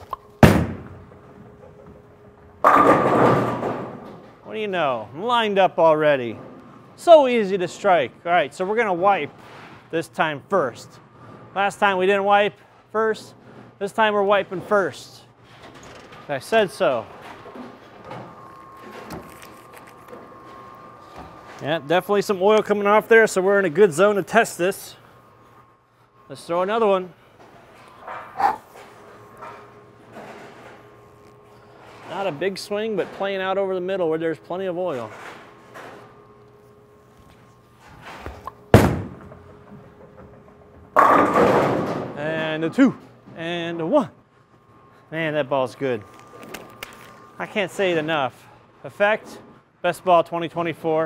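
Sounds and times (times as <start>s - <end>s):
faint steady hum: 0.0s - 51.0s
bowling ball thud on lane: 0.4s - 1.0s, 38.7s - 39.5s
bowling pins crashing: 0.4s - 4.4s, 38.4s - 42.4s
bowling ball rolling rumble: 38.4s - 42.2s.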